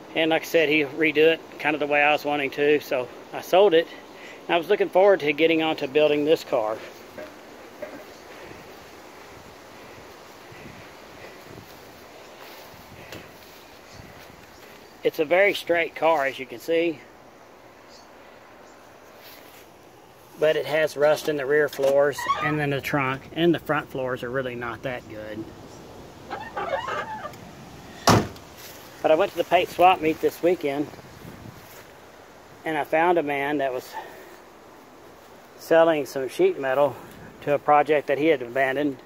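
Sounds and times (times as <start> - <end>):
faint wind hiss: 0.0 - 39.0
soft rustles or knocks: 7.0 - 8.6.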